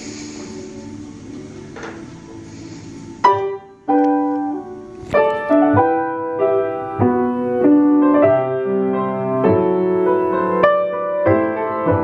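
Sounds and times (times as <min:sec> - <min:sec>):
slow piano chords ringing: 0:00.0 - 0:12.0.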